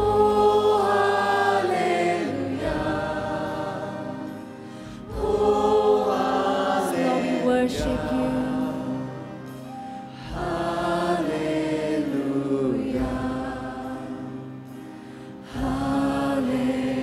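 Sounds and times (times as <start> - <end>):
congregation singing with music: 0.0 - 17.0.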